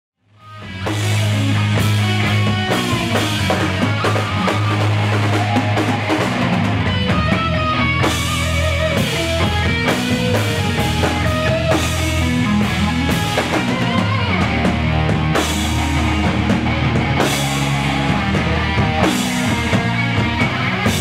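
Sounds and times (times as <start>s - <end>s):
electric guitar: 0.3s - 21.0s
drum kit with cymbals: 0.6s - 21.0s.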